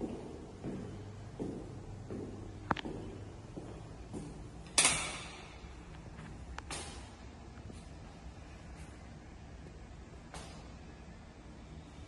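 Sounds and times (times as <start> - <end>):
footsteps on floor: 0.0 - 4.5.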